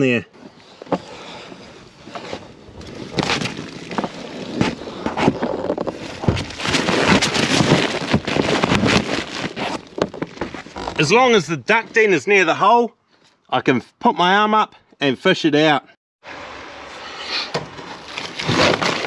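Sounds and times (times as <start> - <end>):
foil ducting crinkling: 2.9 - 11.0, 18.0 - 19.0.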